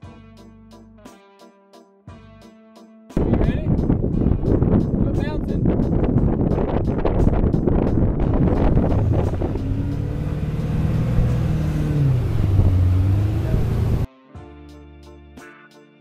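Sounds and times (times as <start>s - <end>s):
wind buffeting microphone: 3.2s - 14.1s
motorboat engine running: 7.0s - 14.1s.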